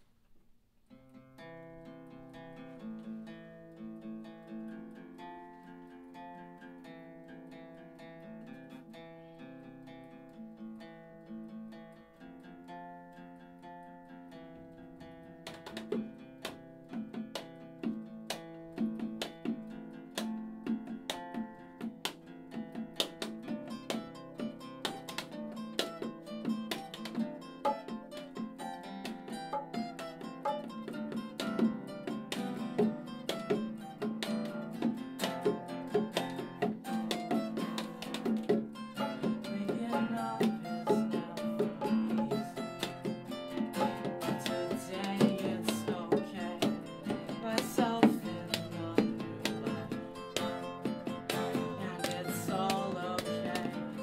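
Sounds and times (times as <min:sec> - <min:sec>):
acoustic guitars playing chords: 0:00.9 - 0:54.0
bongos: 0:15.4 - 0:54.0.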